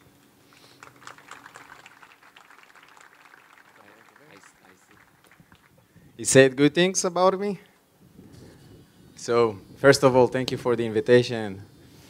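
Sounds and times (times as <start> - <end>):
faint audience applause: 0.0 - 6.5.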